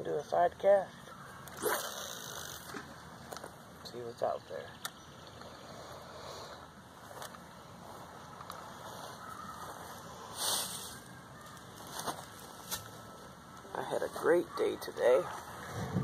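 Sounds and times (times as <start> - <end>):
faint outdoor background: 0.0 - 16.0.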